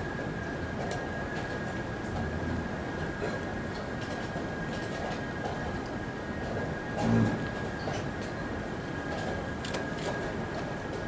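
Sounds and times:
rumbling hum: 0:02.0 - 0:03.8, 0:06.8 - 0:07.8.

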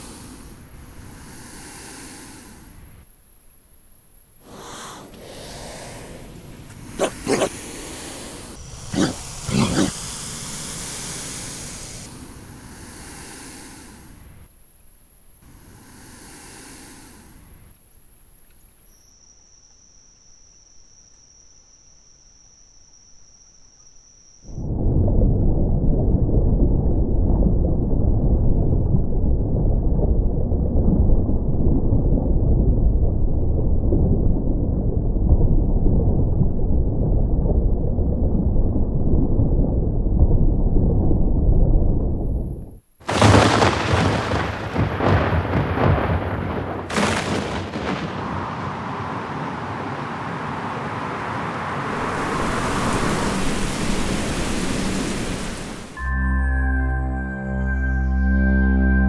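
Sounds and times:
heavy rain hissing: 0:00.0 - 0:03.1, 0:04.4 - 0:14.5, 0:15.4 - 0:17.6, 0:43.0 - 0:56.0
deep rumble: 0:24.6 - 0:49.2
thunder cracks: 0:24.8 - 0:56.0.

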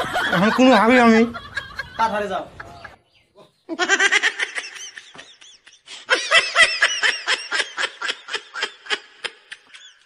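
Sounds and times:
person laughing: 0:03.7 - 0:10.0.

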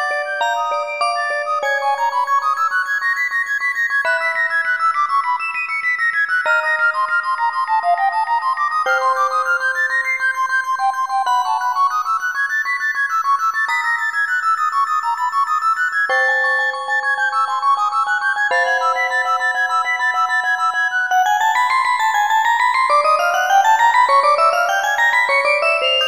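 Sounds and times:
celesta: 0:00.0 - 0:26.0.

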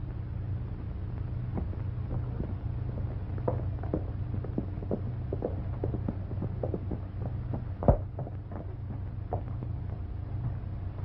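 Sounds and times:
low film soundtrack hum: 0:00.0 - 0:11.0
horse galloping on dirt: 0:01.1 - 0:11.0.

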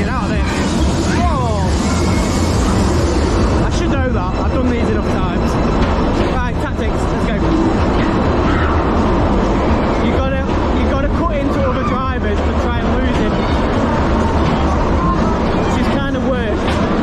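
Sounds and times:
people shouting: 0:00.0 - 0:03.4, 0:08.0 - 0:09.0.

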